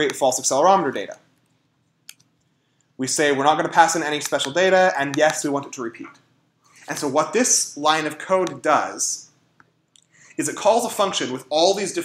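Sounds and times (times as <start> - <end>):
person speaking: 0.0 - 1.3, 3.0 - 9.4, 10.0 - 12.0.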